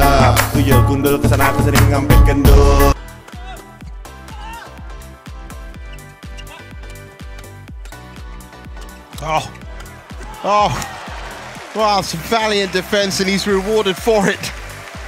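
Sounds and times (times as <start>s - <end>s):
steady music: 0.0s - 15.0s.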